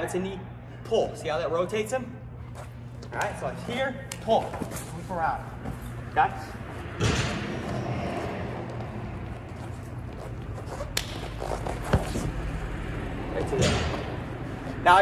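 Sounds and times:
low hum: 0.0s - 15.0s
sharp slaps: 10.9s - 11.4s.

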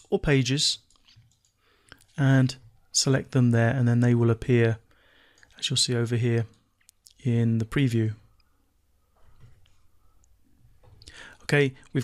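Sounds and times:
man speaking: 2.1s - 4.8s, 5.6s - 8.3s, 11.4s - 12.0s.

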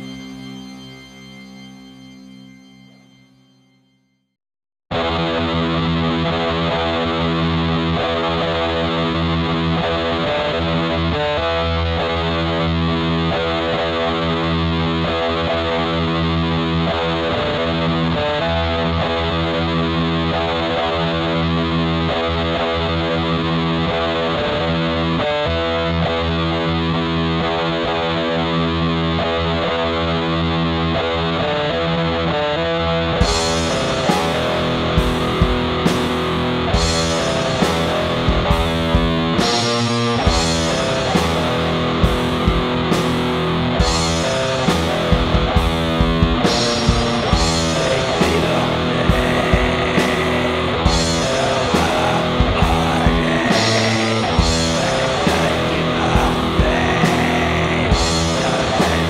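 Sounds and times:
heavily distorted electric guitar: 0.0s - 3.2s, 4.9s - 59.0s.

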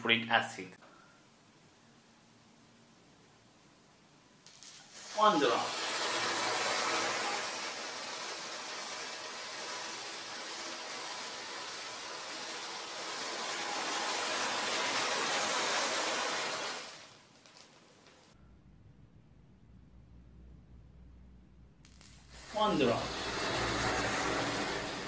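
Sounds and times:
matches flaring with rushing hiss: 4.3s - 18.4s, 21.8s - 25.0s
faint low hum: 18.4s - 22.2s.

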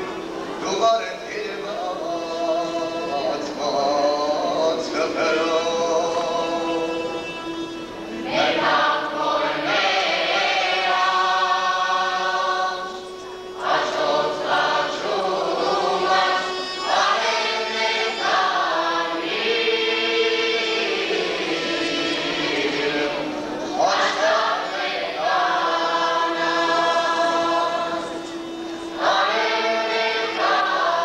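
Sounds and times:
folk chorus singing: 0.0s - 31.0s.

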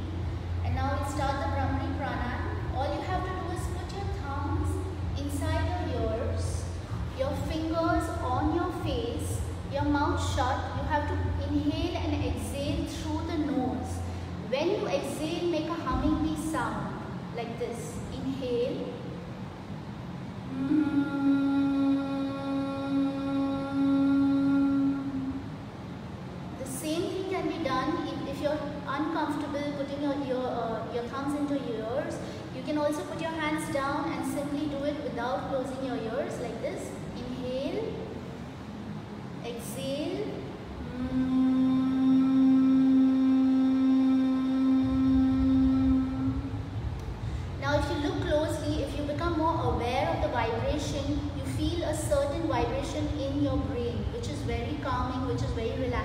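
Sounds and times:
woman humming: 20.5s - 25.6s, 40.8s - 47.1s.

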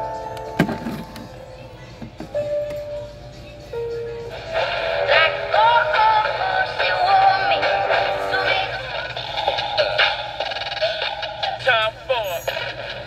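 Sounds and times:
radio music with singing: 4.2s - 13.0s.

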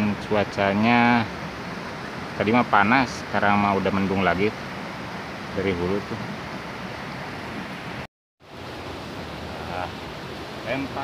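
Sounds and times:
river rushing over rocks: 0.3s - 11.0s.

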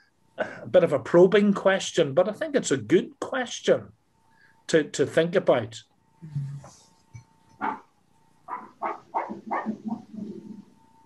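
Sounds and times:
short animal calls: 8.5s - 10.6s.

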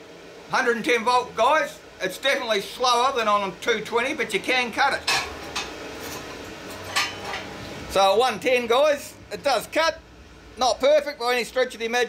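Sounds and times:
steel plate clinking and scraping: 5.1s - 7.5s.

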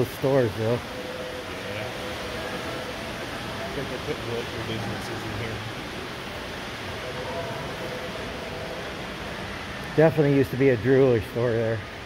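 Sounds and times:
faint distant voices: 0.0s - 11.9s
indoor space background hiss: 0.0s - 12.0s.

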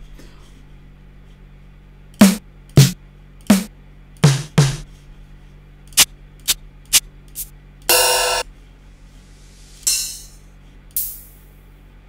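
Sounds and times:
hit with ringing pitch: 7.9s - 8.4s
hissing open hi-hat: 9.4s - 10.4s.

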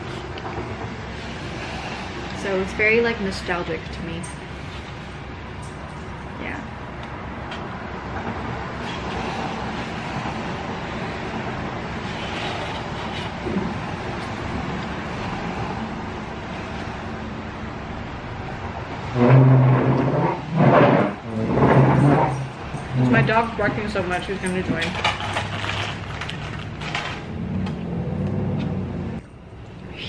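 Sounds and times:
steady background noise: 0.0s - 30.0s.

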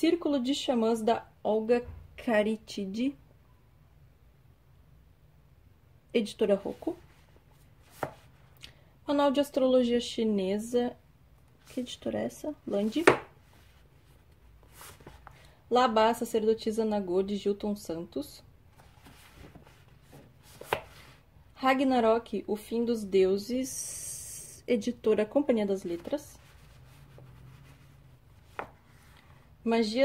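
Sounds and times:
books rustling on shelf: 6.6s - 8.5s, 12.6s - 15.5s, 18.7s - 21.2s, 25.8s - 29.4s
book knocking on shelf: 13.0s - 13.3s.

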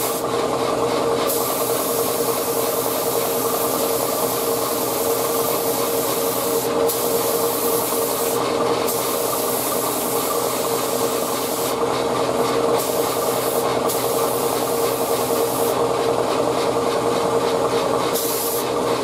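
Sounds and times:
spray gun hissing: 0.0s - 0.3s, 1.3s - 11.8s, 12.7s - 15.8s, 18.1s - 18.8s.

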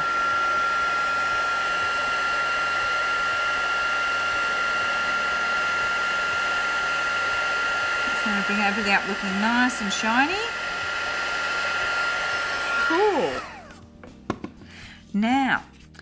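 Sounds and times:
heat gun fan whining: 0.0s - 14.4s.

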